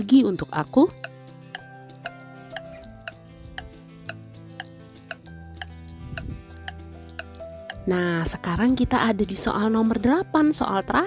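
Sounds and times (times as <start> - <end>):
ticking clock-like beat: 1.0 - 7.8.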